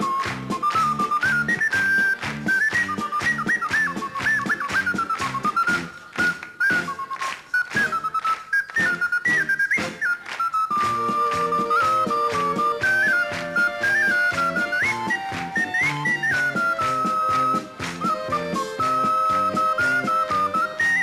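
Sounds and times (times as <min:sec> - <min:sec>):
bass: 0:00.0 - 0:07.1, 0:08.8 - 0:21.0
drums: 0:00.0 - 0:08.0, 0:08.8 - 0:21.0
high whistle-like melody: 0:00.0 - 0:21.0.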